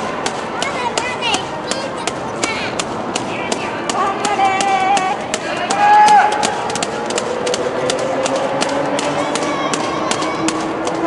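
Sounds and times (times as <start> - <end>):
running shoes slapping on asphalt: 0.0 - 11.0
spectators shouting: 0.0 - 11.0.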